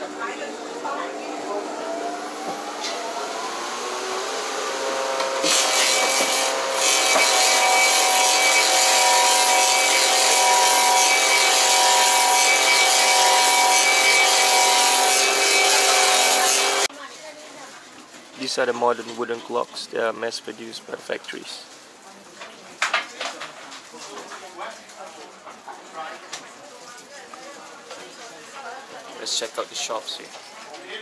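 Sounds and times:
carving machine whine: 0:02.3 - 0:16.9
machine knives cutting wood: 0:04.8 - 0:16.9.

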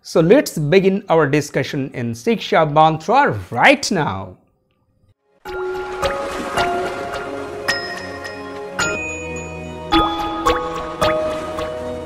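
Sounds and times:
water drips: 0:05.5 - 0:08.8, 0:10.0 - 0:12.0.

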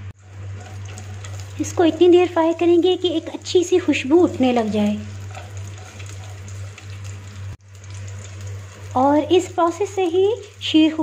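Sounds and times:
nuts sizzling in oil: 0:00.2 - 0:11.0.

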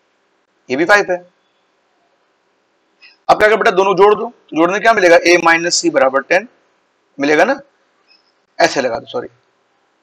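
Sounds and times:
man speaking: 0:00.7 - 0:01.2, 0:03.2 - 0:06.5, 0:07.2 - 0:07.6, 0:08.6 - 0:09.3.

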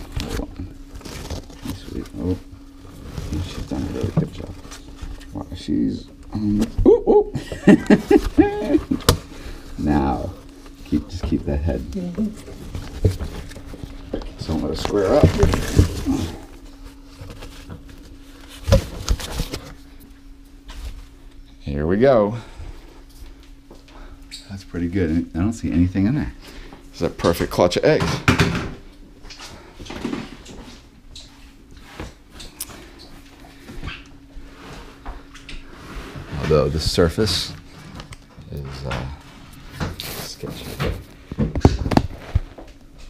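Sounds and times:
newspaper rustling and crinkling: 0:00.0 - 0:05.4, 0:12.2 - 0:19.9
faint steady hum: 0:00.0 - 0:43.0.

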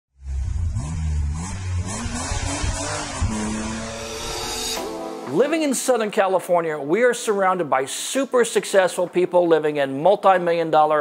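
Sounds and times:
car engine revving: 0:00.2 - 0:04.8
music: 0:04.5 - 0:10.8.

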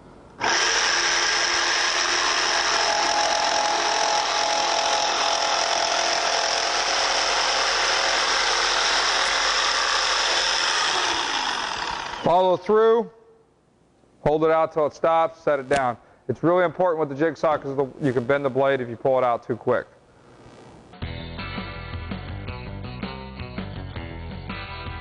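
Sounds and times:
electric jigsaw cutting wood: 0:00.4 - 0:12.3.

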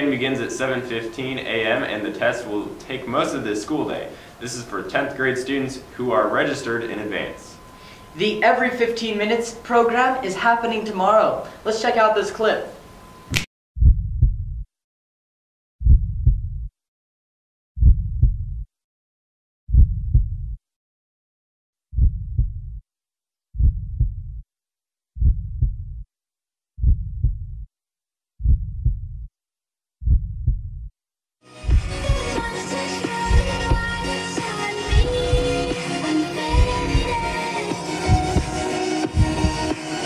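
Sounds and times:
heartbeat thumps: 0:13.8 - 0:14.7, 0:15.8 - 0:16.7, 0:17.8 - 0:18.7, 0:19.7 - 0:20.6, 0:22.0 - 0:22.8, 0:23.6 - 0:24.4, 0:25.2 - 0:26.0, 0:26.8 - 0:27.7, 0:28.4 - 0:29.3, 0:30.0 - 0:30.9, 0:31.6 - 0:32.4, 0:33.2 - 0:34.1, 0:34.9 - 0:35.7, 0:36.5 - 0:37.3, 0:38.0 - 0:39.8.

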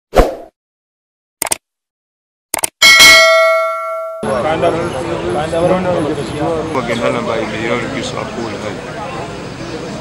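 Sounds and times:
loud bell ding: 0:02.8 - 0:04.4.

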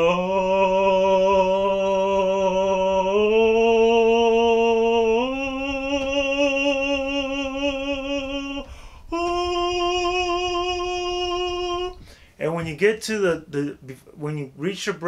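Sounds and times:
man singing vocal warm-up: 0:00.0 - 0:15.0
man breathing in: 0:08.6 - 0:09.1, 0:12.0 - 0:12.4.

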